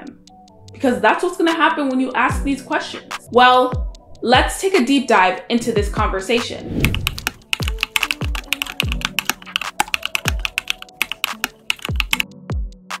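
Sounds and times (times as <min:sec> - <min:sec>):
background music with kick drum: 0:00.0 - 0:13.0.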